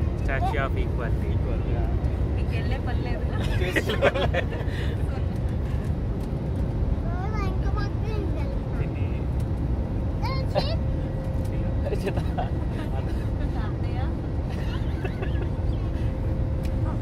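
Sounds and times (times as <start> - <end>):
airliner cabin rumble: 0.0 - 17.0.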